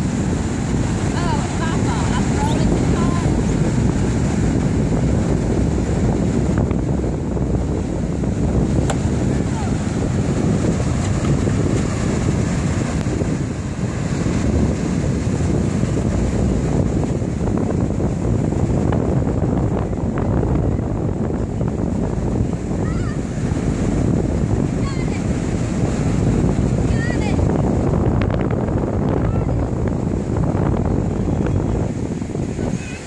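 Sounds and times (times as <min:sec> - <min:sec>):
ocean surf breaking: 0:00.0 - 0:33.0
wind buffeting microphone: 0:00.0 - 0:33.0.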